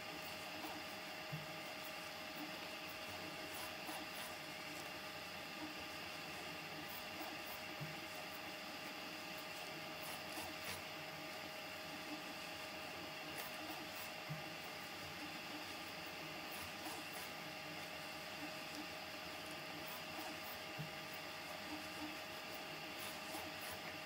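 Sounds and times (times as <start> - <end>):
printer humming with held tones: 0.0 - 24.0.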